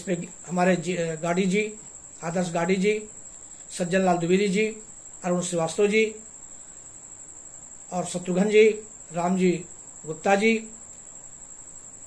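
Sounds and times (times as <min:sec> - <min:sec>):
man speaking: 0:00.0 - 0:06.3, 0:07.9 - 0:10.8
cricket trilling: 0:00.0 - 0:12.0.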